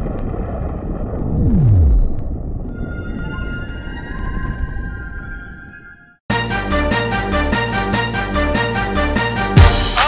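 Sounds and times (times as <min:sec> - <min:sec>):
low rumble sweeping down: 0:00.0 - 0:05.8.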